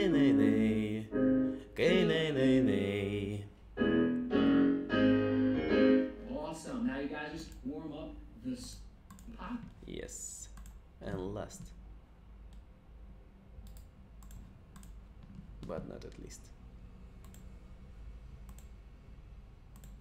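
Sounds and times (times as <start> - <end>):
computer clicks: 9.1 - 9.4, 10.4 - 10.8, 13.6 - 15.0, 17.2 - 17.5, 18.4 - 18.8, 19.7 - 20.0.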